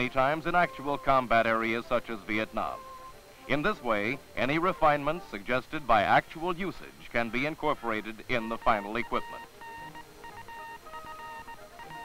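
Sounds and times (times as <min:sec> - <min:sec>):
morse code beeps: 0:02.6 - 0:03.2, 0:08.3 - 0:12.0.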